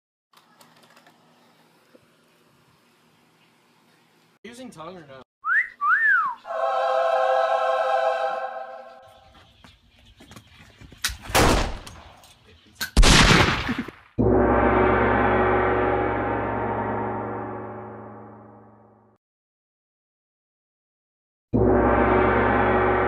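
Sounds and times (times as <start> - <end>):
gong struck and ringing: 14.2 - 18.8, 21.6 - 23.0.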